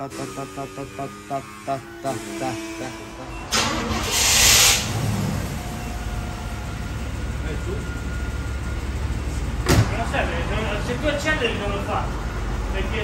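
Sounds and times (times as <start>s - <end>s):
car engine starting and idling: 0.0s - 13.0s.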